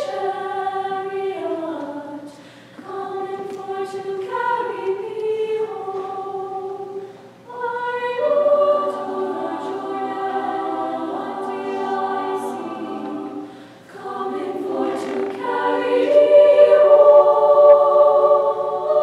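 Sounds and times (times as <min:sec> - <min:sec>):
girls choir singing a cappella: 0:00.0 - 0:19.0.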